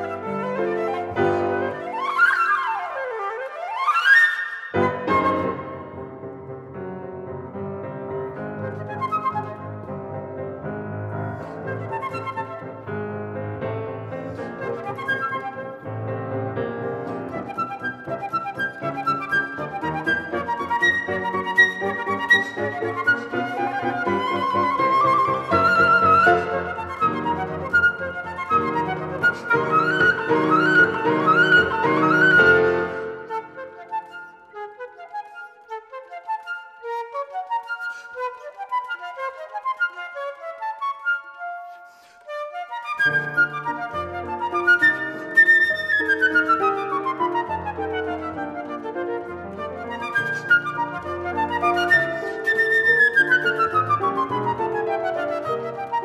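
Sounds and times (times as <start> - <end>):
flute playing waltz: 0.0 - 56.0
grand piano playing waltz: 0.0 - 56.0.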